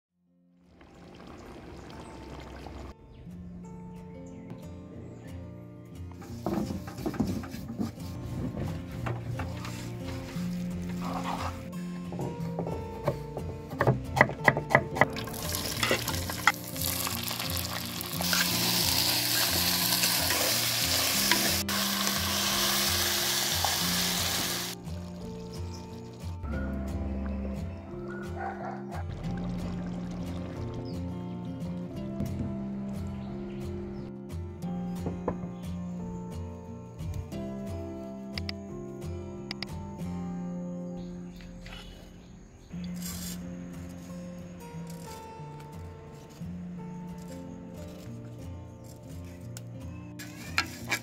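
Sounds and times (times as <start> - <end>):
background music: 2.0 - 51.0
food sizzling in hot oil: 15.3 - 25.0
sharp clicks: 39.5 - 39.8.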